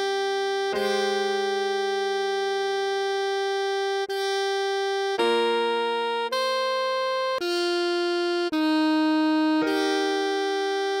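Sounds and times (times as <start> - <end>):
sustained keyboard chord: 0.0 - 11.0
synthesized saxophone note: 0.7 - 1.7.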